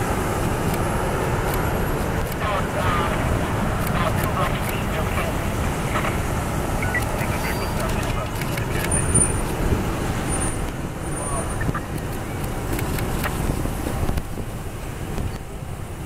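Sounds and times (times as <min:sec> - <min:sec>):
cars driving slowly past: 0:00.0 - 0:16.0.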